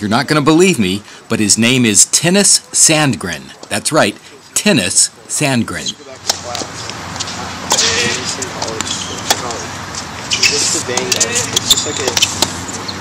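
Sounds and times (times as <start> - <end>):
outdoor background noise: 0.0 - 13.0
tennis ball hitting racket strings: 6.2 - 9.5, 10.3 - 12.6.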